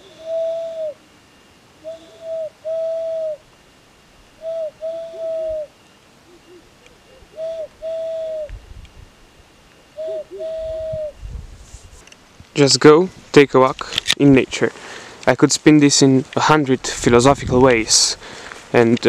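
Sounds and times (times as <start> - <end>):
owl-like hand whistle hoots: 0.0 - 1.2, 1.8 - 3.4, 4.4 - 5.7, 6.3 - 8.6, 10.0 - 11.2.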